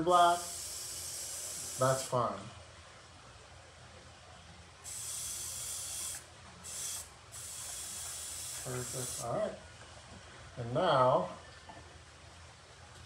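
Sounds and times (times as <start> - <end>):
airbrush spraying hiss: 0.0 - 2.1, 4.8 - 9.3.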